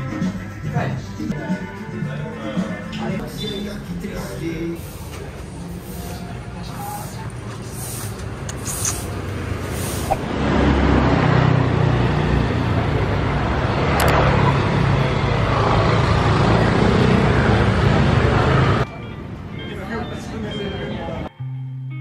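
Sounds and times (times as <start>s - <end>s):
motor scooters passing: 8.2s - 18.9s.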